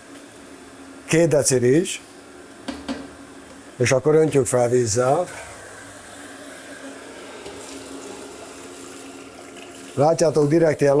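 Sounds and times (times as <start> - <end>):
water pouring into metal pot: 7.5 - 10.1.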